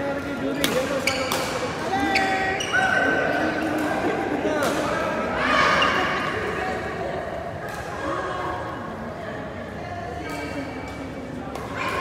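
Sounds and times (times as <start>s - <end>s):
shoes squeaking on court floor: 0.8s - 3.8s.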